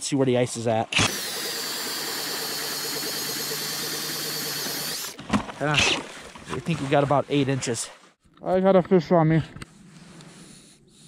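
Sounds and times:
cordless drill boring through ice: 0.9 - 5.2.

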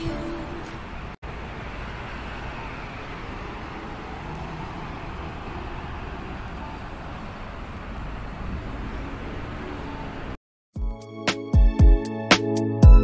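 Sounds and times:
road traffic rumble: 0.0 - 10.4.

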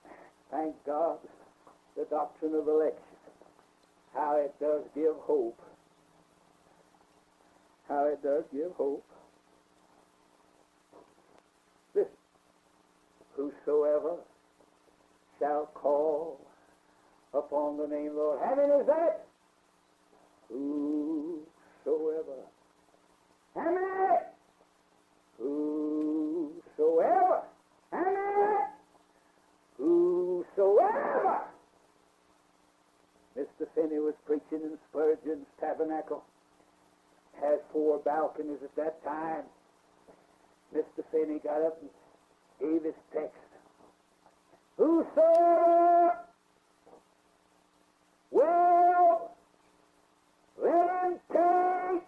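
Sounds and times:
man chanting: 0.5 - 1.4, 4.1 - 5.7, 7.9 - 9.2, 13.3 - 14.3, 15.3 - 16.5, 17.3 - 19.3, 20.5 - 22.6, 23.5 - 24.4, 25.4 - 28.8, 29.8 - 31.6, 37.4 - 39.5, 44.8 - 46.4, 48.3 - 49.4, 50.6 - 52.0
person singing long held notes: 20.5 - 22.5, 25.4 - 28.8, 29.8 - 31.5.

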